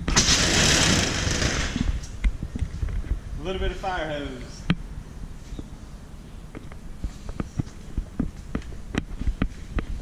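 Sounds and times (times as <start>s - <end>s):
metal roll-up door rattling: 0.1s - 1.9s.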